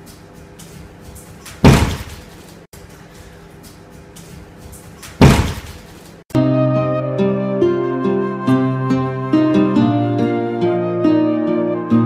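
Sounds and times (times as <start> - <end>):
loud slam: 1.6 - 2.2, 5.2 - 5.8.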